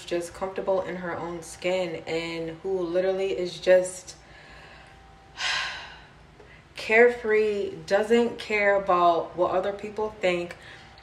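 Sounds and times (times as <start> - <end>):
woman speaking: 0.0 - 4.2, 6.8 - 10.8.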